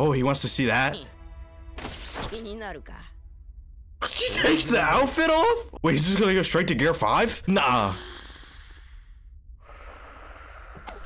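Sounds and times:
person breathing faintly: 0:07.9 - 0:11.0.

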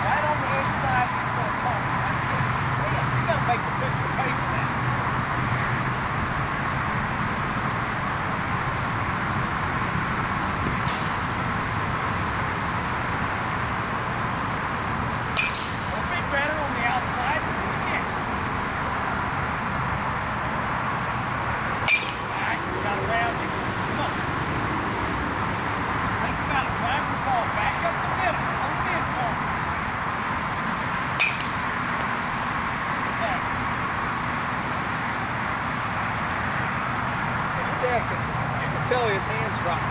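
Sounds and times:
outdoor background noise: 0:00.0 - 0:39.9.

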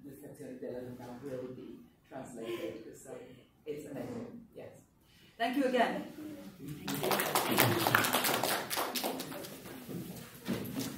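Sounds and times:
audience applause: 0:06.8 - 0:09.6.

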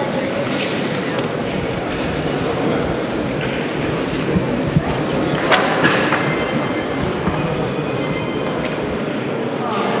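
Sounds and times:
indistinct voices: 0:00.0 - 0:10.0
steady background noise: 0:00.0 - 0:10.0.

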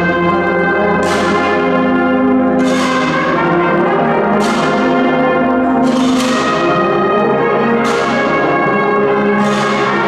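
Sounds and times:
brass band playing slow march: 0:00.0 - 0:10.0
cymbal crash: 0:00.8 - 0:08.7.

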